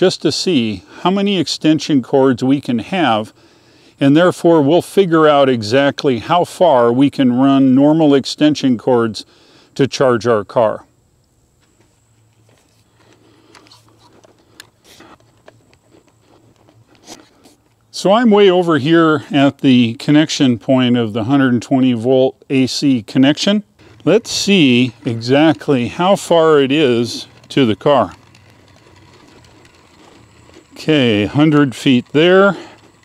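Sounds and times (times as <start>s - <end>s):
low steady hum: 0.0s - 33.0s
measuring wheel rolling on concrete: 12.8s - 33.0s
counter clicking rapidly: 23.8s - 33.0s.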